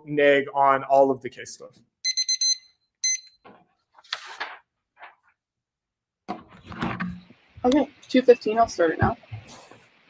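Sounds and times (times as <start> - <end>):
timer alarm beeping: 2.0 - 3.4.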